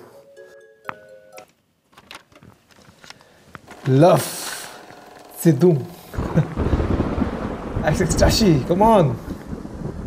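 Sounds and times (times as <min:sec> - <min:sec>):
rain: 0:06.0 - 0:10.0
rolling thunder: 0:06.1 - 0:10.0.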